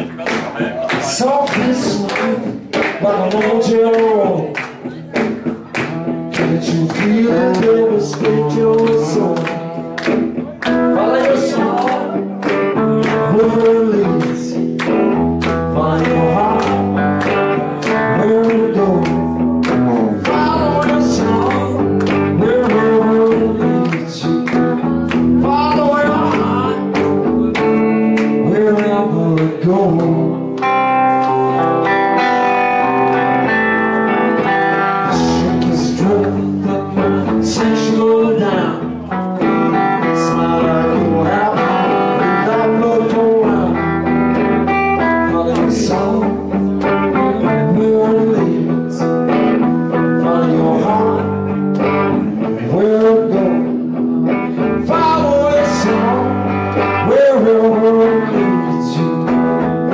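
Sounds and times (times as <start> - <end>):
drums: 0.0 - 10.9
electric guitars: 0.0 - 59.9.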